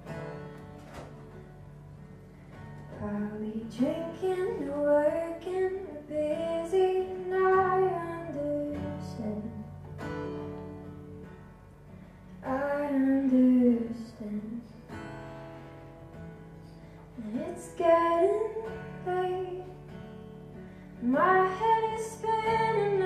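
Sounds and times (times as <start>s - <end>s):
acoustic guitar: 0.0s - 23.0s
woman singing: 2.8s - 9.9s, 12.4s - 15.0s, 17.1s - 20.1s, 21.0s - 23.0s.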